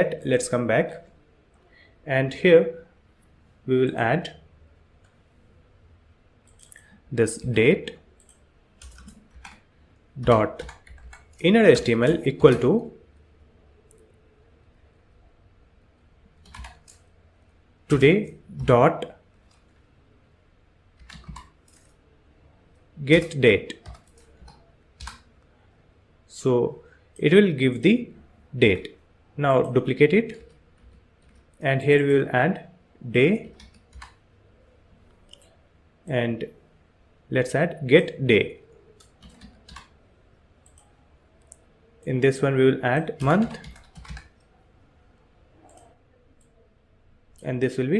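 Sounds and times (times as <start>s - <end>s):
computer keyboard keystrokes: 8.2s - 9.6s, 10.2s - 11.4s, 16.4s - 17.1s, 21.0s - 21.9s, 23.2s - 25.3s, 33.4s - 34.2s, 39.0s - 39.9s, 43.2s - 44.4s
faint computer clicks: 40.6s - 41.7s.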